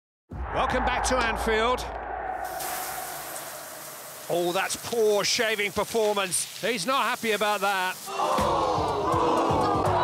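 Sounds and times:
shower water spraying: 0:02.4 - 0:09.9.

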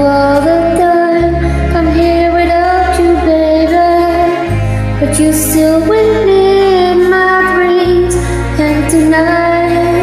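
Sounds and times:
karaoke backing track: 0:00.0 - 0:10.0
woman singing: 0:00.0 - 0:10.0.

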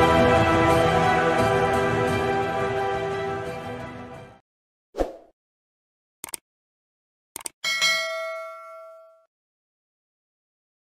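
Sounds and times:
bell-like ding: 0:07.6 - 0:09.3.

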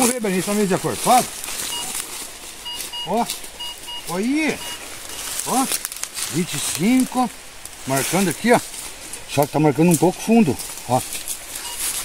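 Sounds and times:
metal detector beeps: 0:01.6 - 0:02.0, 0:02.6 - 0:05.7, 0:11.6 - 0:12.0.

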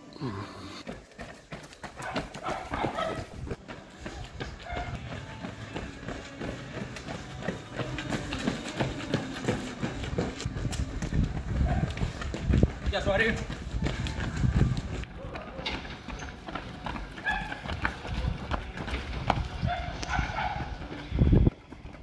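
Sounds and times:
running footsteps on stone pavement: 0:00.8 - 0:22.0.

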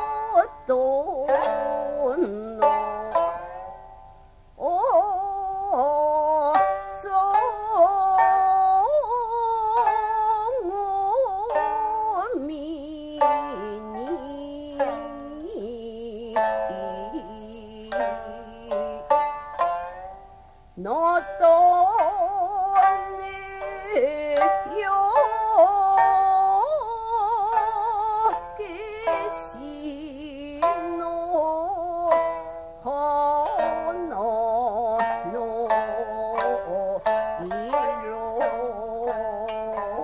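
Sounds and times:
woman singing with vibrato: 0:00.0 - 0:03.7, 0:04.6 - 0:20.1, 0:20.8 - 0:40.0
plucked shamisen strokes: 0:00.0 - 0:40.0.

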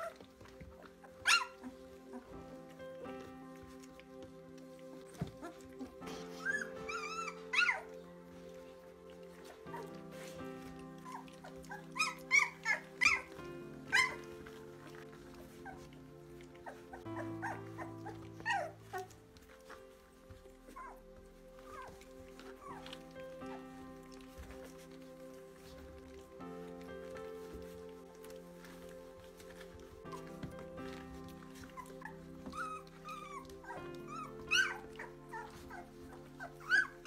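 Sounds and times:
background music of sustained chords: 0:00.0 - 0:37.0
puppies whimpering and squealing: 0:00.0 - 0:37.0.

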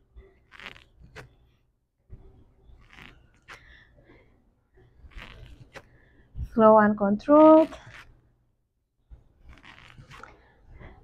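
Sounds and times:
rustling on exercise mat: 0:00.0 - 0:08.3, 0:09.0 - 0:11.0
small crackles of movement: 0:00.2 - 0:06.6, 0:07.2 - 0:08.3, 0:09.0 - 0:11.0
person breathing: 0:03.5 - 0:05.0, 0:05.8 - 0:06.5, 0:10.2 - 0:11.0.

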